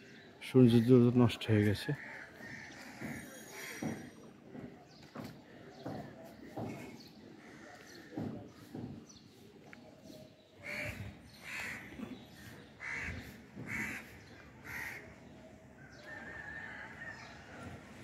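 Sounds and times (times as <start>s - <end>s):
crow cawing: 2.0s - 4.0s, 10.6s - 11.9s, 12.8s - 15.1s.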